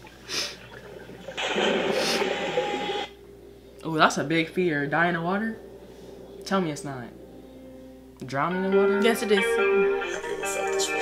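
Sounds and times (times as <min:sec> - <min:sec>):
underwater rushing water: 0:00.0 - 0:03.1.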